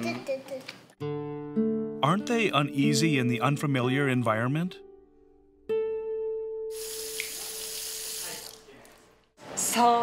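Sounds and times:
faucet running into sink: 6.7s - 8.7s.

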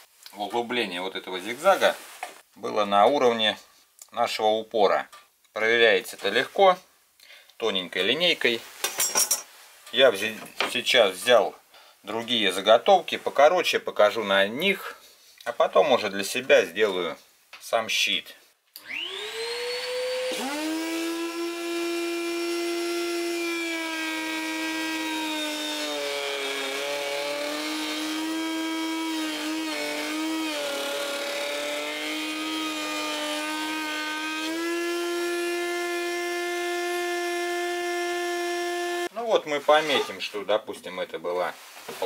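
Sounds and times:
router whining: 18.8s - 39.1s.

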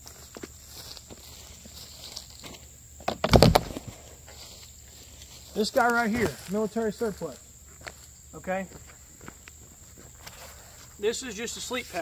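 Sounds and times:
footsteps on grass: 0.0s - 12.0s
high insect trill: 0.0s - 12.0s.

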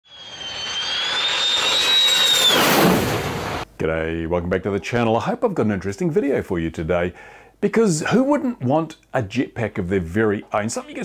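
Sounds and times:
rush of noise: 0.0s - 3.6s
jet engine whine: 0.0s - 3.7s
person speaking: 3.8s - 11.0s.

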